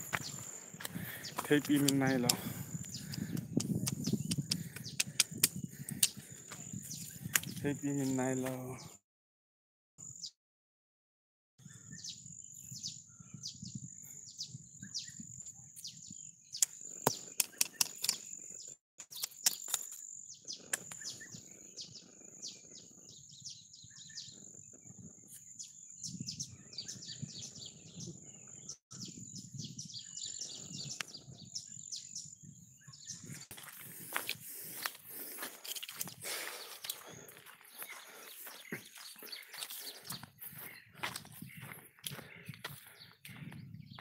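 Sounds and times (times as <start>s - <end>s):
microphone handling rumble: 0.0s - 7.8s
birds chirping: 0.0s - 9.0s, 11.6s - 44.0s
sharp clicks and snaps: 1.6s - 6.2s, 7.3s - 7.6s, 16.6s - 18.3s, 19.0s - 20.0s, 20.7s - 21.1s.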